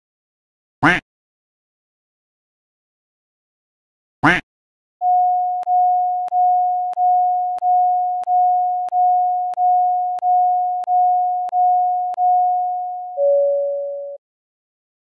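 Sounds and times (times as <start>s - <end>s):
repeated mid-pitched beep tone: 5.0s - 14.2s.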